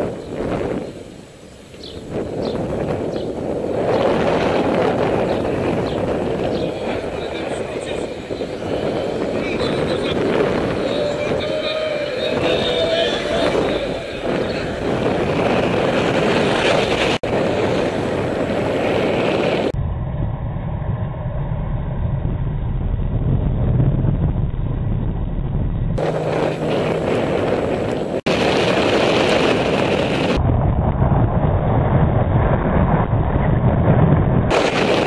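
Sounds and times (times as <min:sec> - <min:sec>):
road noise: 0:00.0 - 0:30.5
wind rush on microphone: 0:00.0 - 0:35.0.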